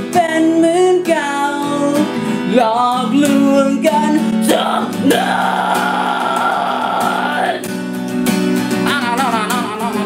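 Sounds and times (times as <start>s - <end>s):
strummed acoustic guitar: 0.0s - 10.0s
man singing high note: 3.2s - 7.7s.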